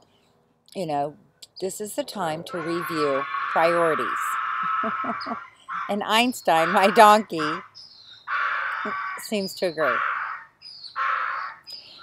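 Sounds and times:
donkey braying: 2.2s - 7.6s.

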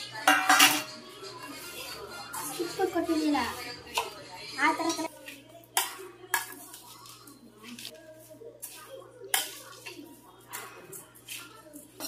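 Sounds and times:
scraping and stirring in pan: 0.1s - 12.0s.

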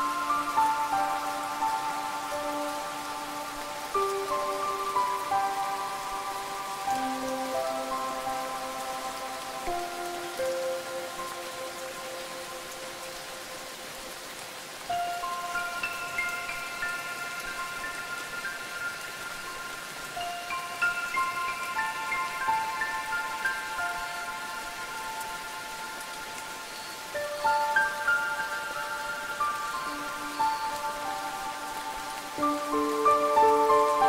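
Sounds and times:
steady rain falling: 0.0s - 34.0s.

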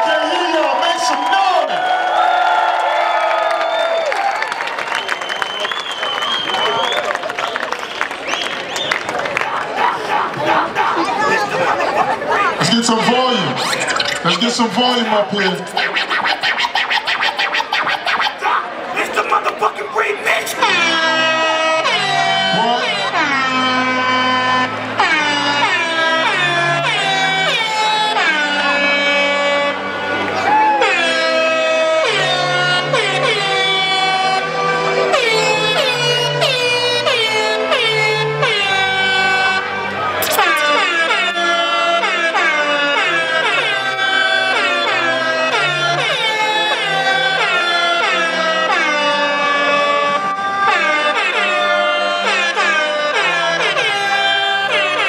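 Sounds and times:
dj music over sound system: 12.6s - 18.6s, 40.2s - 40.8s
bassline: 35.2s - 41.6s.

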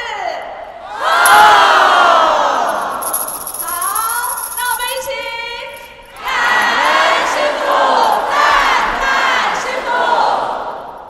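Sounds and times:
crowd shouting in unison: 0.7s - 3.0s, 6.2s - 11.0s.

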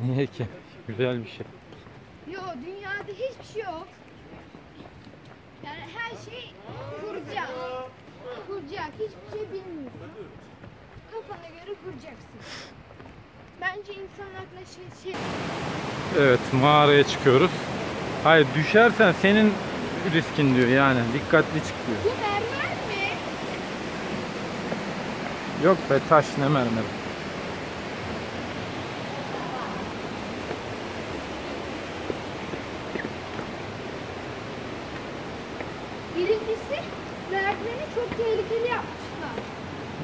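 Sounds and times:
quiet lakeside ambience: 0.0s - 40.0s
waterfall roaring: 15.0s - 40.0s.

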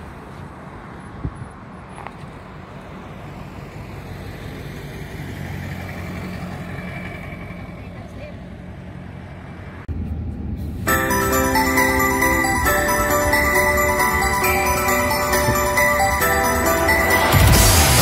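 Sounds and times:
moving car hum: 0.0s - 18.0s
vehicles passing by: 0.0s - 18.0s.

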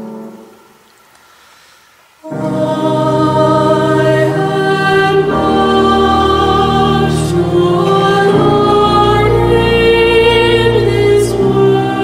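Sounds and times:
choral singing chord: 2.2s - 12.0s.

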